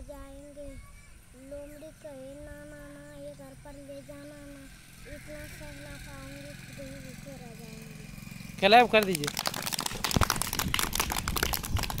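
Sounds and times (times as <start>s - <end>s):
children applauding: 9.0s - 12.0s.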